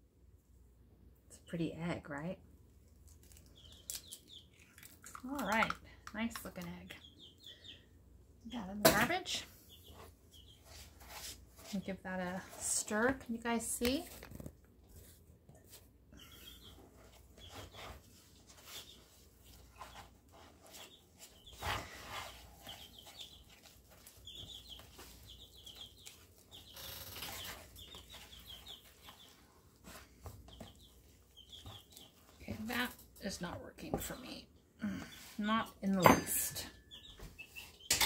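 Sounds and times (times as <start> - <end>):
spatula scraping batter: 17.0 - 24.4.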